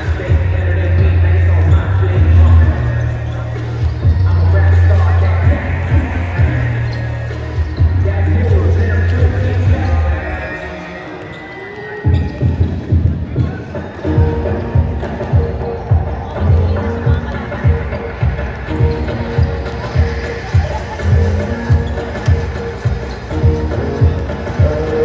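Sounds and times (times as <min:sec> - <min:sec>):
basketballs bouncing on court floor: 0:00.0 - 0:10.3, 0:11.0 - 0:25.0
arena music with heavy bass: 0:00.0 - 0:11.0, 0:12.4 - 0:25.0.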